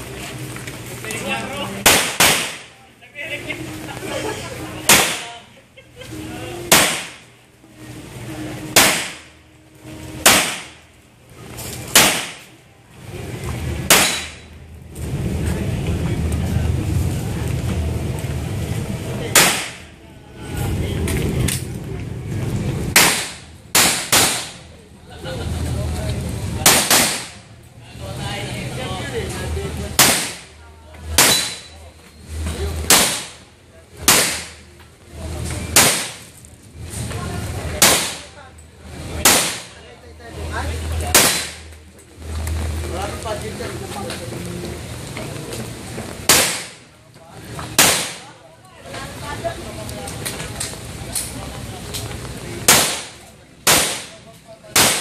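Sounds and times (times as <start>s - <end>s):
steady low rumble: 0.0s - 48.3s
pistol shots: 1.8s - 2.7s, 4.9s - 5.3s, 6.7s - 7.2s, 8.8s - 9.3s, 10.2s - 10.8s, 11.9s - 12.5s, 13.9s - 14.4s, 19.3s - 19.9s, 23.0s - 24.6s, 26.6s - 27.4s, 30.0s - 30.4s, 31.2s - 31.7s, 32.9s - 33.4s, 34.1s - 34.6s, 35.7s - 36.3s, 37.8s - 38.3s, 39.2s - 39.7s, 41.1s - 41.6s, 46.3s - 46.8s, 47.8s - 48.2s, 52.7s - 54.2s, 54.8s - 55.0s.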